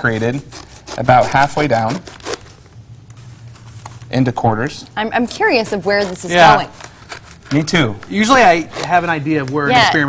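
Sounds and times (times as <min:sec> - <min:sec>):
paper handling: 0:02.1 - 0:04.7, 0:05.4 - 0:10.0
scissors cutting paper: 0:05.2 - 0:09.7.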